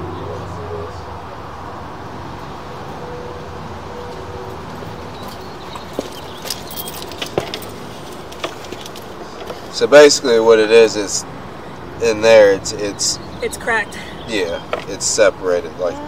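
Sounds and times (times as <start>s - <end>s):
light metallic clicks and knocks: 5.2s - 9.7s, 14.7s - 15.0s.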